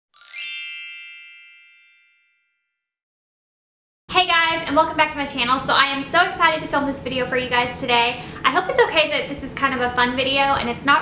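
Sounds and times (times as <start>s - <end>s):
bright chime sound effect: 0.1s - 2.6s.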